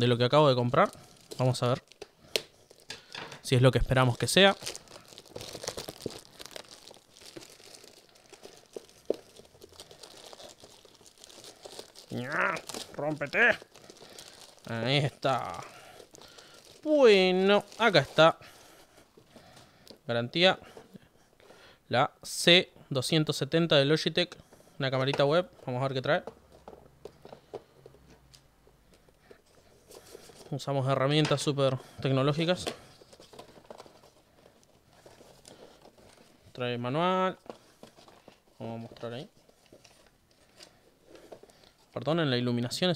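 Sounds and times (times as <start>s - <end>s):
packaging rustling and crinkling: 0.5s - 20.0s, 29.4s - 42.0s
person speaking: 3.4s - 4.7s, 12.1s - 13.8s, 14.6s - 15.9s, 16.8s - 18.4s
hands handling cardboard box: 32.6s - 36.4s.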